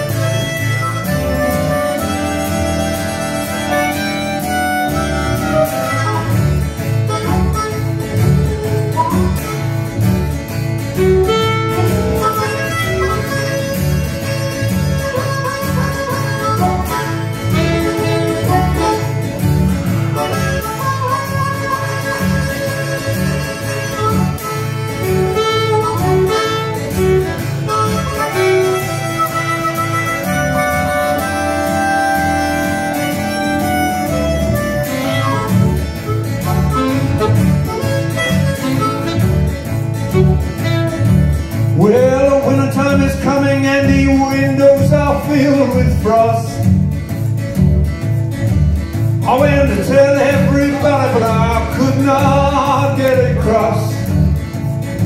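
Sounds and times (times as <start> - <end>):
saxophone: 0.0 - 46.9
acoustic guitar: 0.0 - 55.0
harmonica playing lead: 0.0 - 55.0
plucked double bass: 0.0 - 55.0.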